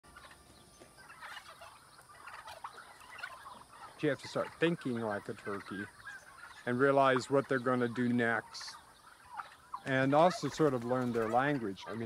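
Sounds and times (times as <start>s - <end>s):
turkeys calling: 0.0s - 12.0s.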